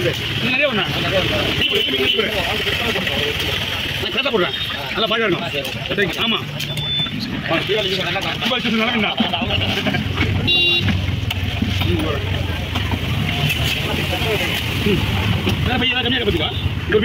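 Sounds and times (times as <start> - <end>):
people talking: 0.0 - 17.0.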